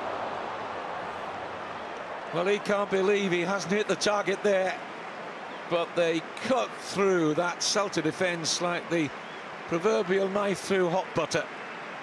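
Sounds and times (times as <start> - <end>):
stadium crowd roaring: 0.0 - 12.0.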